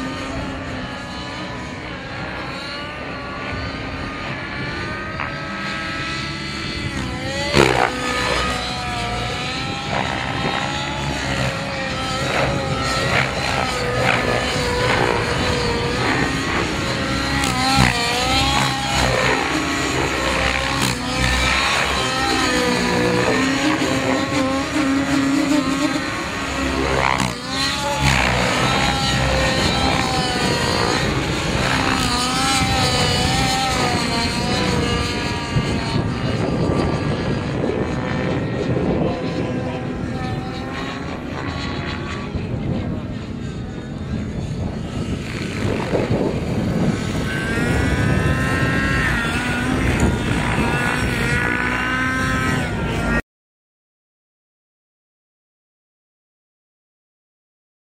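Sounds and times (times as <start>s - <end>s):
model helicopter motor and rotor: 0.0s - 53.2s.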